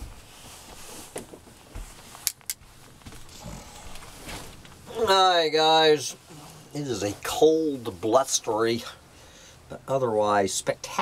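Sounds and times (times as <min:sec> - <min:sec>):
rustling and light knocks: 0:00.0 - 0:04.9.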